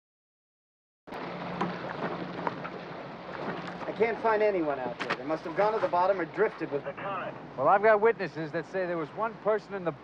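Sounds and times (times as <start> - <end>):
wind and sea: 1.1 - 10.0.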